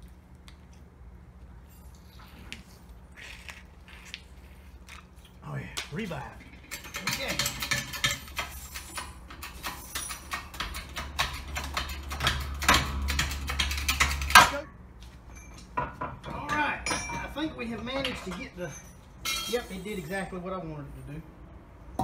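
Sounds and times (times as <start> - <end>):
metal clicks and clanks of jack: 6.4 - 14.6.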